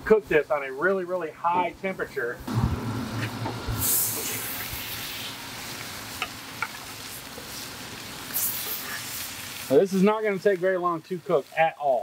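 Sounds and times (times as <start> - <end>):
fish sizzling on griddle: 2.5 - 12.0.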